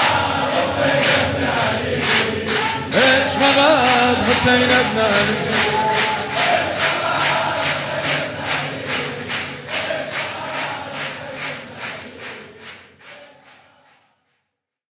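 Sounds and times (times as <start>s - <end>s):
crowd clapping in unison: 0.0s - 14.1s
voices: 0.1s - 9.1s.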